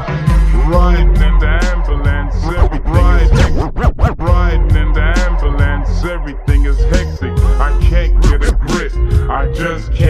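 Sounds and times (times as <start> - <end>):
slowed hip hop track: 0.0 - 10.0
dj scratch: 2.4 - 5.4, 8.1 - 8.9.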